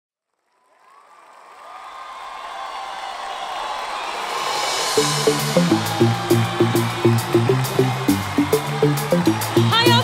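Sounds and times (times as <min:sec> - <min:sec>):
concert crowd cheering: 0:00.4 - 0:10.0.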